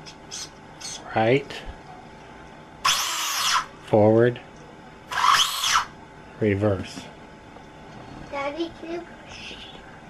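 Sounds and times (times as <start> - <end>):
small electric motor whining: 2.8 - 3.7, 5.1 - 6.0.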